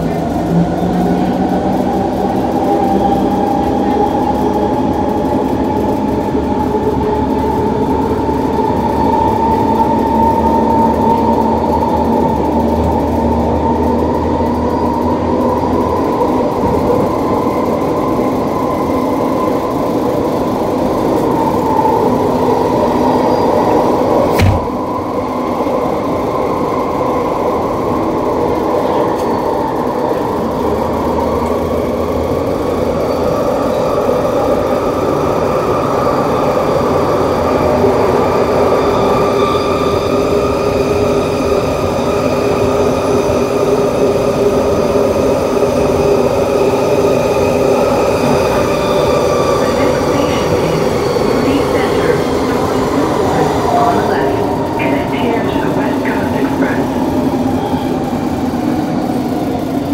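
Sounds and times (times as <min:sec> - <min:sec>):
sharp knock: 0:24.3 - 0:24.8.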